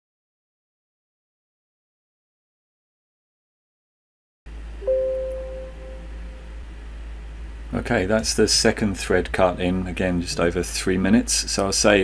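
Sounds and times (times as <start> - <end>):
steady low hum: 4.5 - 12.0
soft bell-like notification chime: 4.8 - 6.5.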